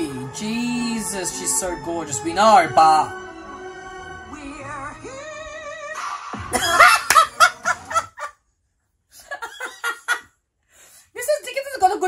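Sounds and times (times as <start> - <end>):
man screaming and laughing: 6.5 - 8.3.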